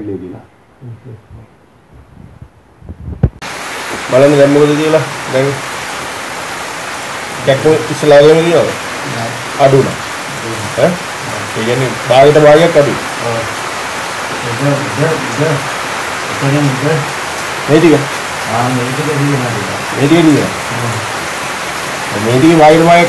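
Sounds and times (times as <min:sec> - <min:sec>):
man speaking: 0:00.0 - 0:01.5, 0:04.0 - 0:05.7, 0:07.4 - 0:13.6, 0:14.3 - 0:21.2, 0:22.1 - 0:23.0
steady background hiss: 0:00.0 - 0:23.0.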